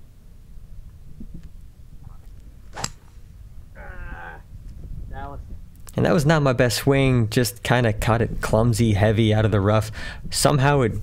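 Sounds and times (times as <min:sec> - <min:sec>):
golf club striking ball: 0:02.7 - 0:03.3
short wavering voice-like call: 0:03.8 - 0:04.5.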